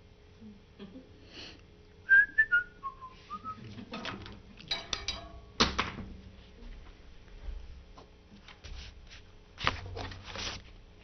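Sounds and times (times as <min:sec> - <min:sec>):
person whistling a tune: 0:02.1 - 0:03.6.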